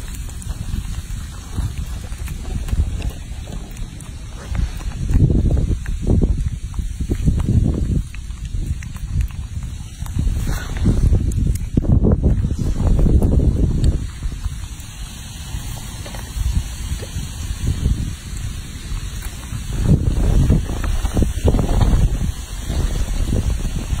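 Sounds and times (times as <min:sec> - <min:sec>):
wind noise on microphone: 0:00.0 - 0:24.0.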